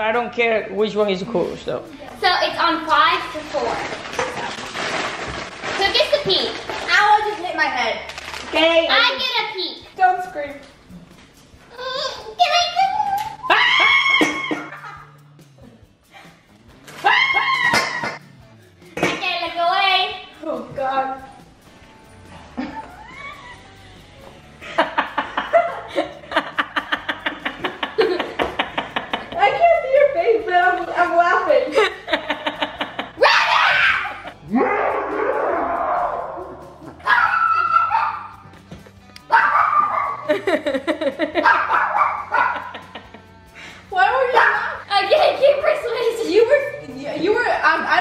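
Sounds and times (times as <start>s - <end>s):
girls screaming with laughter: 12.8s - 15.0s, 17.0s - 18.2s, 22.6s - 23.8s, 33.2s - 38.4s
high-pitched voices squealing: 22.7s - 24.0s.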